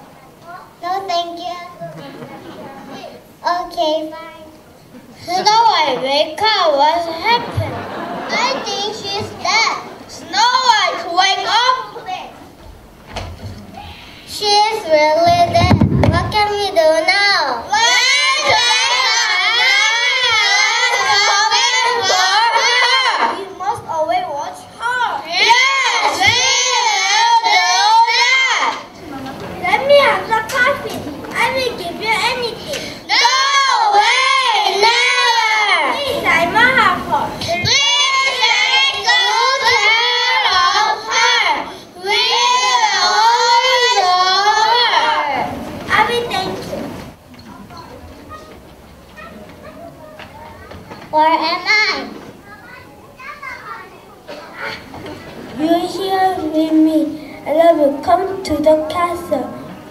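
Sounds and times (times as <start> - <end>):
young children talking: 0.0 - 12.6, 13.4 - 59.9.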